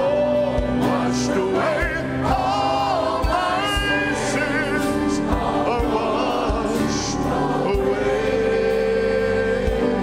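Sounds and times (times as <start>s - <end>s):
choir singing: 0.0s - 10.0s
instrumental accompaniment: 0.0s - 10.0s.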